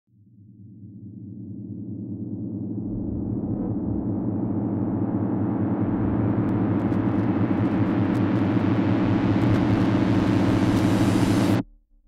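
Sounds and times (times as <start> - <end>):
low droning rumble with flutter: 0.1 - 12.0.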